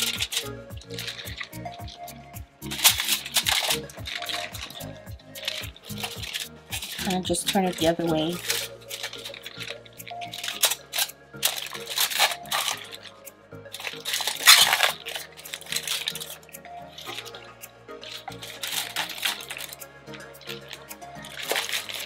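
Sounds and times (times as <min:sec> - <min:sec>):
aluminium foil crinkling: 0:00.0 - 0:22.0
background music with bass line: 0:00.0 - 0:22.0
leaves rustling: 0:00.0 - 0:22.0.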